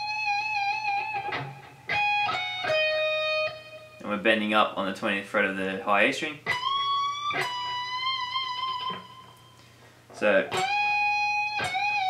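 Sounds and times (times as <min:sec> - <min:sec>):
electric guitar high note: 0:06.5 - 0:12.0.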